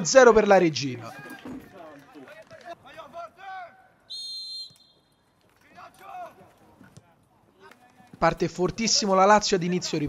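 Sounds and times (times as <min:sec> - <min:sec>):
referee's whistle blast: 0:04.1 - 0:05.1.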